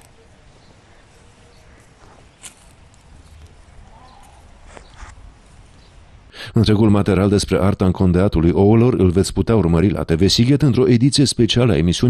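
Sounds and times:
soft clicks and rustles: 0:00.0 - 0:05.9.

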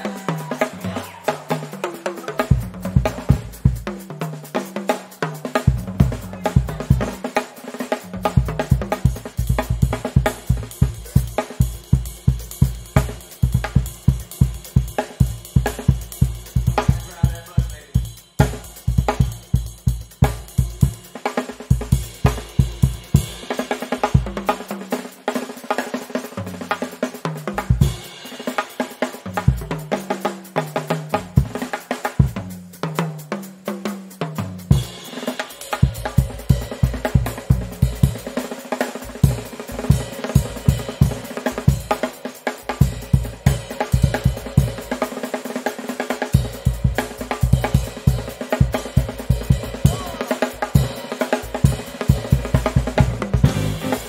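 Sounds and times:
drum kit played hard: 0:00.0 - 0:54.0.

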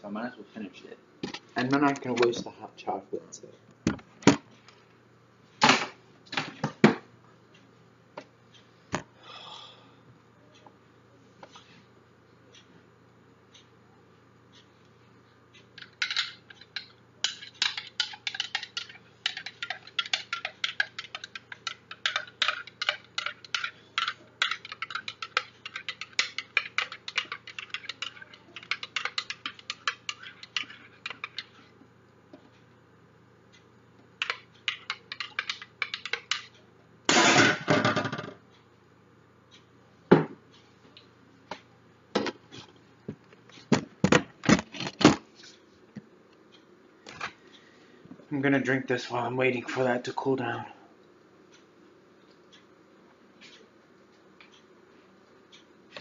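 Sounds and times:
metal spoon clinking in a mug: 0:16.0 - 0:31.4.

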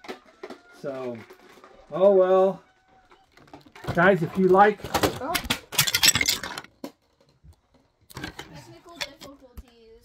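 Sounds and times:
hard objects clattering over: 0:00.0 - 0:09.4.

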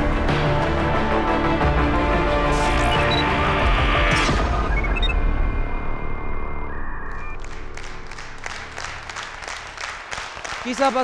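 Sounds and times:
studio audience applause: 0:07.1 - 0:11.0.

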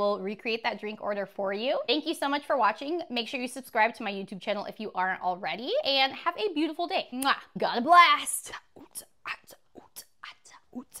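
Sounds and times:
woman whispering: 0:08.4 - 0:11.0.

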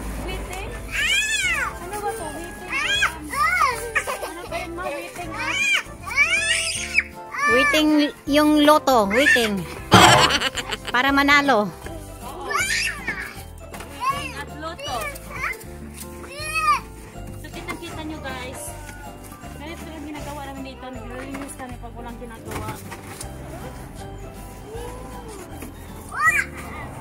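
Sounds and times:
background music with bass line: 0:09.9 - 0:11.1.

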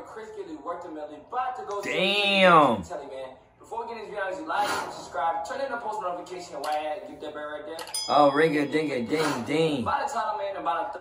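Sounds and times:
man speaking: 0:01.6 - 0:03.1, 0:08.1 - 0:10.2.

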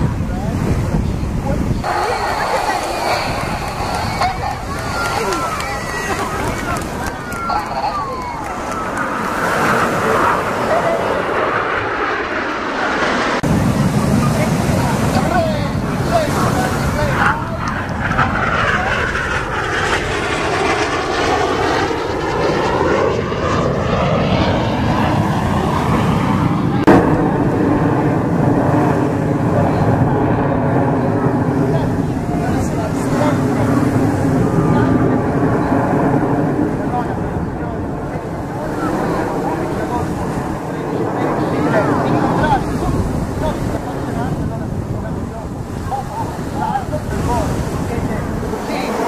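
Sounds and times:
jet engines roaring overhead: 0:00.0 - 0:49.0.

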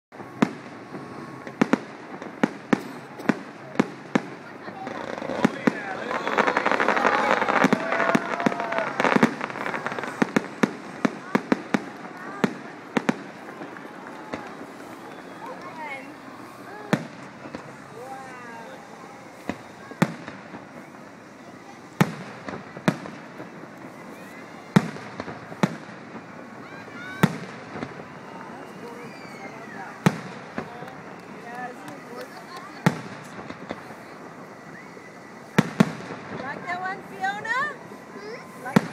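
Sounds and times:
fireworks bursting: 0:00.1 - 0:38.9.

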